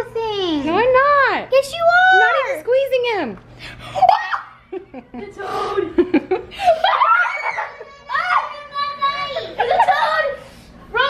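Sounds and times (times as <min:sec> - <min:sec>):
young children squealing: 0:04.0 - 0:04.6, 0:06.8 - 0:08.4.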